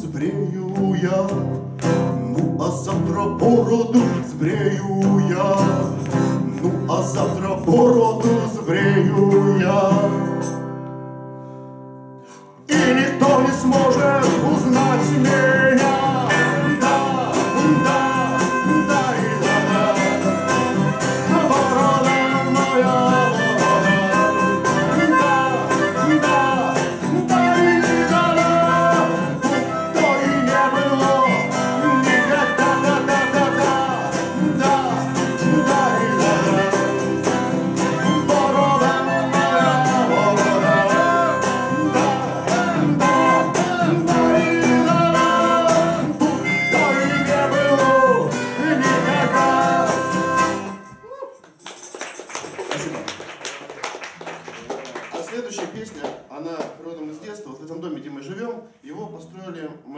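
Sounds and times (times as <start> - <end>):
man singing: 0.0 - 10.6, 12.6 - 51.0
acoustic guitar strummed: 0.0 - 51.2.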